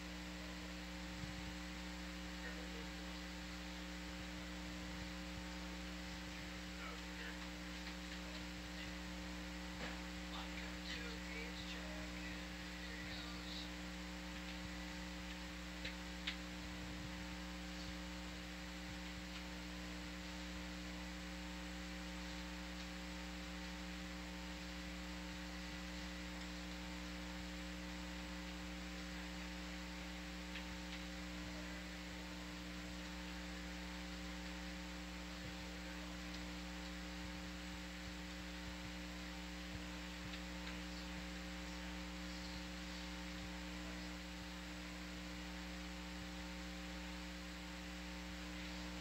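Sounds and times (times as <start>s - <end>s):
electrical hum: 0.0s - 49.0s
faint clicks: 14.3s - 16.5s, 18.9s - 19.5s, 30.5s - 31.2s, 36.2s - 37.0s, 39.7s - 43.5s.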